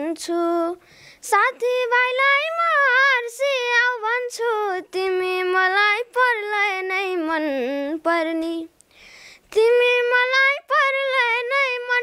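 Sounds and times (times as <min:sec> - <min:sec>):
boy singing unaccompanied: 0:00.0 - 0:08.8, 0:09.4 - 0:12.0
quick breath: 0:00.8 - 0:01.2, 0:08.9 - 0:09.5.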